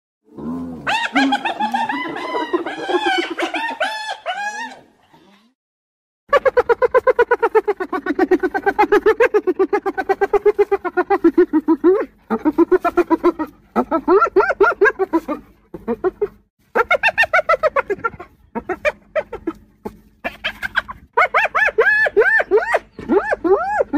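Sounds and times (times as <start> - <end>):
hyena laughing giggle: 0.9 - 4.8, 6.3 - 19.6.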